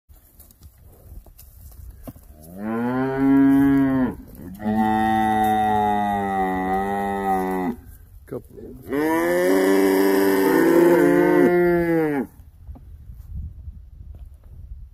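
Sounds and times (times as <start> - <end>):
cow mooing: 2.6 - 7.8, 8.9 - 12.3.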